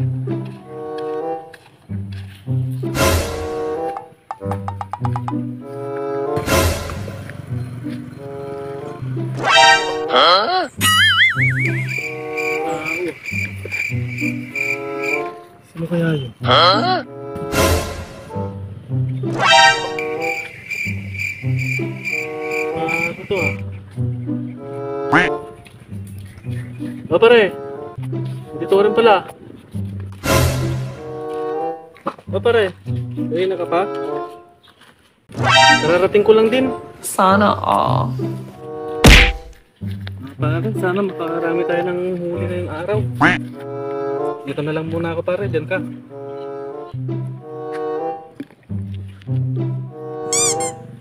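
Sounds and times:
background music: 0.0 - 34.6, 35.3 - 51.0
insect chirping: 10.8 - 15.3, 19.9 - 23.6
loud thud: 39.0 - 39.6.

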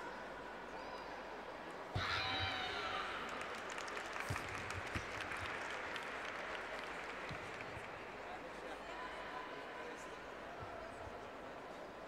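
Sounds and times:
arena crowd applauding and cheering: 2.0 - 9.2.

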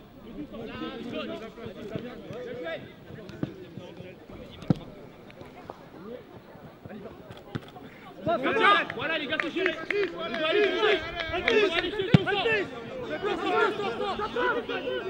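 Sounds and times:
distant shouts of players: 7.9 - 15.0.

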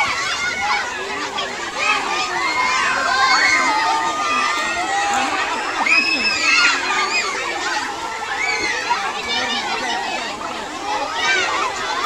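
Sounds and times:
crowd of children shouting: 0.0 - 12.0.

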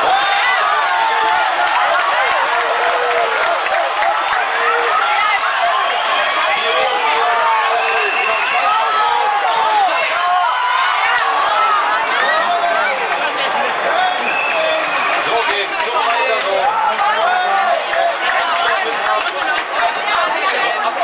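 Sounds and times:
crowd of fans talking: 0.0 - 21.0.

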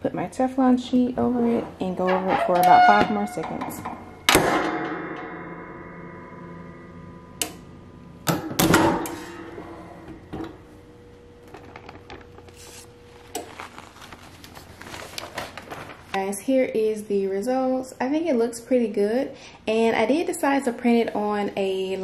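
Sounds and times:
metal heat press clanking: 1.6 - 6.2, 8.3 - 10.7.

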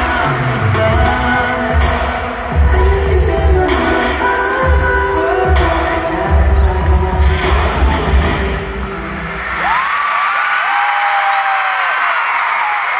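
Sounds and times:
pop song with heavy bass: 0.0 - 10.2
crowd screaming and cheering: 0.0 - 12.9.

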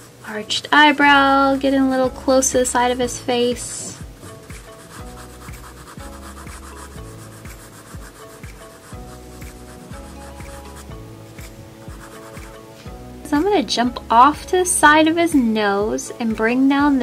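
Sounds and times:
soft background music: 0.0 - 17.0
pencil scratching on paper: 3.7 - 12.6.

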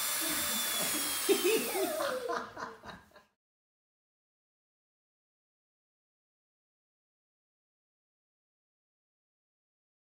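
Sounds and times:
toy drill whirring: 0.0 - 2.3.

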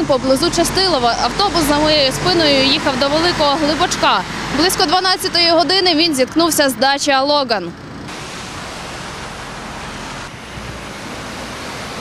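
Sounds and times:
steady outdoor rushing noise: 0.0 - 12.0.

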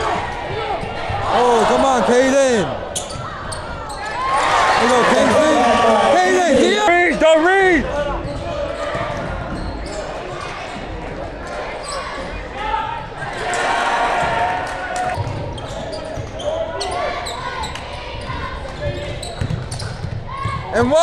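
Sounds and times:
indistinct voices of players and crowd: 0.0 - 21.0.

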